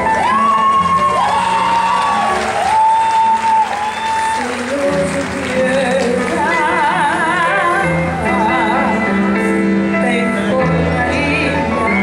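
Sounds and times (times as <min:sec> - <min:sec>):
audience applause: 0:00.0 - 0:06.7
piano accompaniment: 0:00.0 - 0:12.0.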